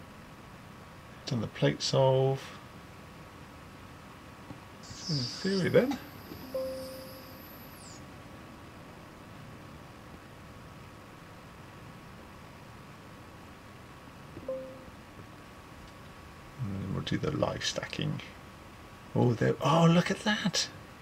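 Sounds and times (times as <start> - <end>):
faint steady hum: 0.0 - 21.0
faint squeak-like tone: 4.8 - 8.1
telescope mount motor whine: 4.8 - 8.2.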